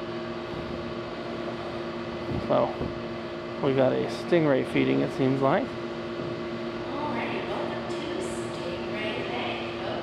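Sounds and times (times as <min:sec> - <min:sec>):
equipment humming: 0:00.0 - 0:10.0.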